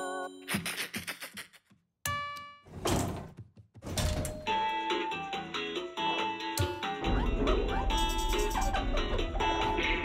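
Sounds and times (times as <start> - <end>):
light music: 4.2 - 10.0.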